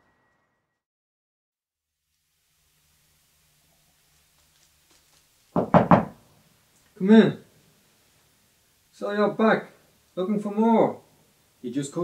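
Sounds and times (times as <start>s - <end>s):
knocks on a door: 5.6s - 6.2s.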